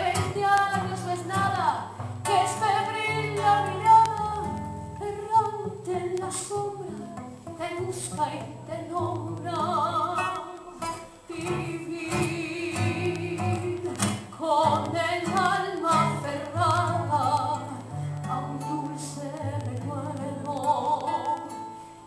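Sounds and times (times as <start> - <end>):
woman singing with vibrato: 0.0 - 21.8
classical guitar: 0.0 - 22.0.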